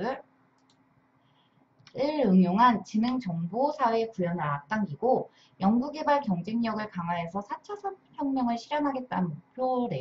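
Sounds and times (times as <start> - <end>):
computer mouse clicks: 0.5 - 0.9
person speaking: 1.8 - 10.0.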